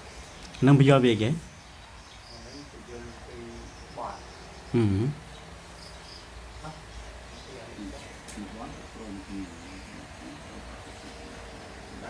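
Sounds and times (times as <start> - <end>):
insect chirps: 0.0 - 12.0
low background hum: 0.0 - 12.0.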